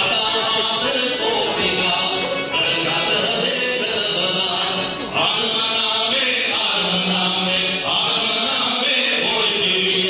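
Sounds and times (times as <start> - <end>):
live folk music: 0.0 - 10.0.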